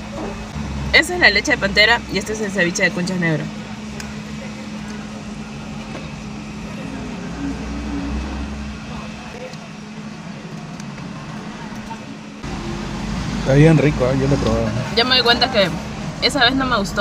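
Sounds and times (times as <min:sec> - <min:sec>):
road traffic hum inside car: 0:00.0 - 0:17.0
vehicle passing rumble: 0:00.0 - 0:17.0.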